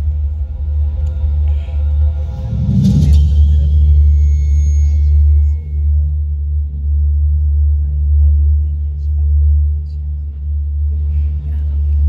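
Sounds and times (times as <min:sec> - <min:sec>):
deep bass drone: 0:00.0 - 0:12.0.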